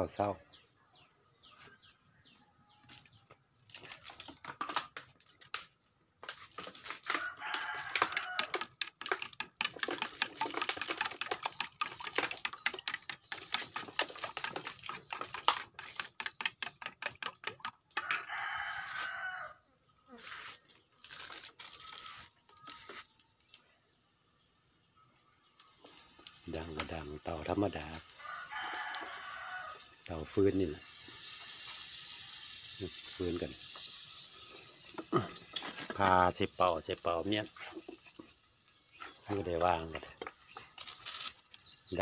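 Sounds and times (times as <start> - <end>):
rustling and crinkling: 2.9 - 16.2, 20.2 - 23.6
rooster crowing: 7.2 - 8.6, 18.0 - 19.6, 28.2 - 29.8
small bird chirping: 38.0 - 42.0.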